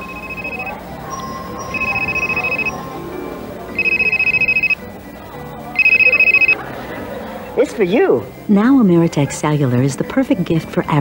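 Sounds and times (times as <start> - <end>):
phone ringing with electronic trill: 0.0 - 6.6.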